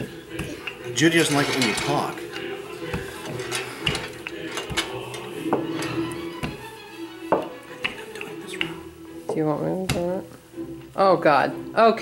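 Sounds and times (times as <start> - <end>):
rolling pin over dough: 0.0 - 10.2
background music with held notes: 0.0 - 12.0.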